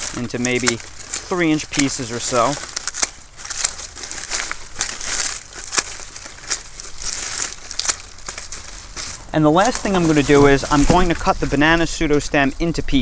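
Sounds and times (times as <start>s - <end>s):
shears snipping leaves: 0.0s - 11.6s
leaves crinkling: 0.0s - 13.0s.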